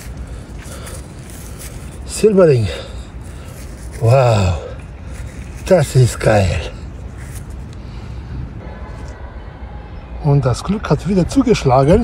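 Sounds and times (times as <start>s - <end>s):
low rumbling outdoor background: 0.0s - 12.0s.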